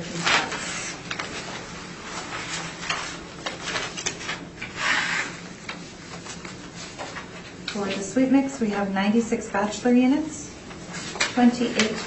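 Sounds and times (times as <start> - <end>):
paper rustling: 0.0 - 8.8, 10.6 - 12.0.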